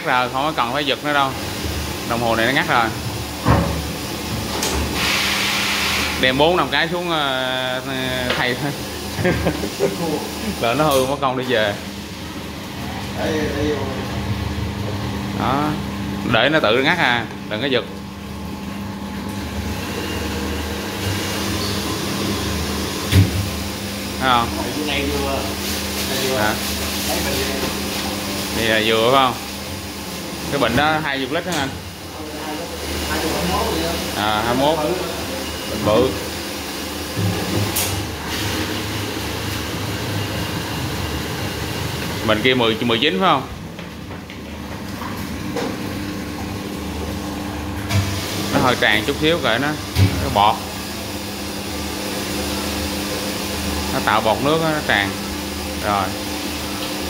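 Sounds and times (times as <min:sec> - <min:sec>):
low machine hum: 0:06.1 - 0:57.0.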